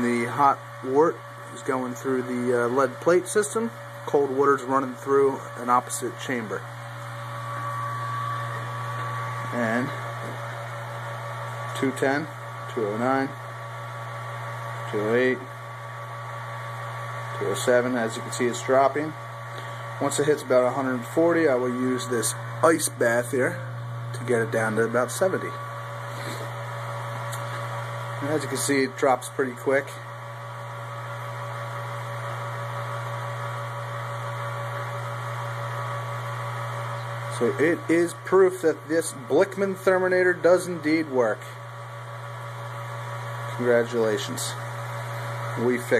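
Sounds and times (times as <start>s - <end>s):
electric pump humming and whining: 0.0s - 45.9s.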